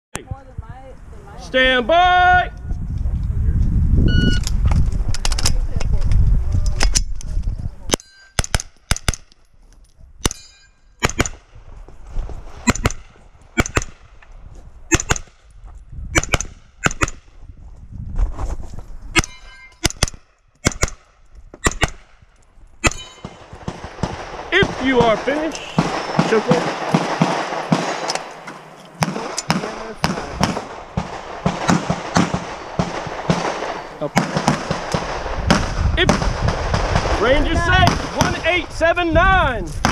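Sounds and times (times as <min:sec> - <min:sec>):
carbine gunshots in quick pairs: 0:11.0 - 0:11.5, 0:12.6 - 0:14.1, 0:14.9 - 0:15.4, 0:22.8 - 0:28.4, 0:29.0 - 0:38.8.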